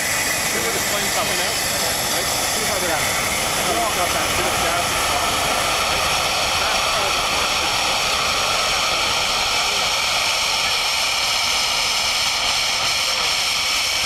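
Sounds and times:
gas flare roaring: 0.0 - 14.0.

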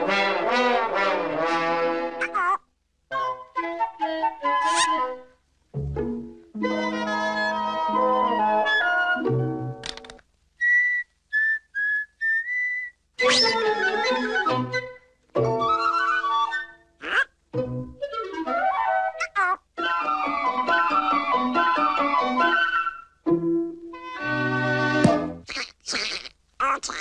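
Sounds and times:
cartoon orchestral music: 0.0 - 2.4, 3.1 - 5.4, 6.6 - 9.4, 13.2 - 16.8, 17.6 - 23.1.

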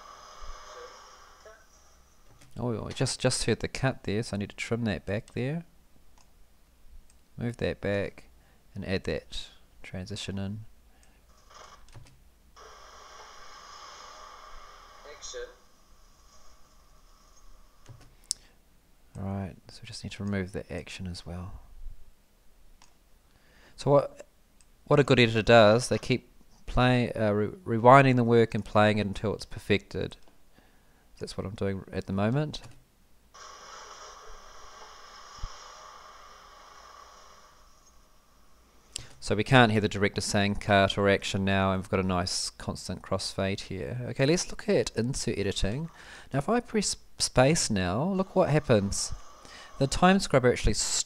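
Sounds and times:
low background hiss: 0.0 - 12.6, 14.2 - 33.4, 34.2 - 51.0
click: 22.8 - 23.0.

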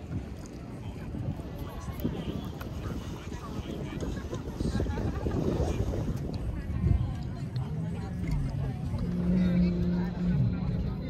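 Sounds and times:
background voices: 0.1 - 11.0
low rumble: 4.2 - 11.0
low engine drone: 7.4 - 11.0.

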